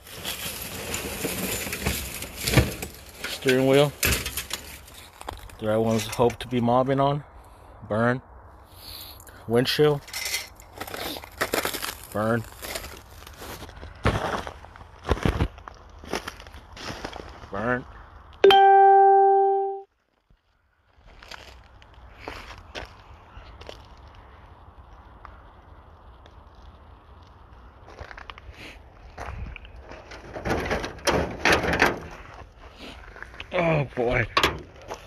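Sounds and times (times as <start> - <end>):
crunching in burned debris: 0.0 - 6.6, 9.2 - 18.4, 19.9 - 35.0.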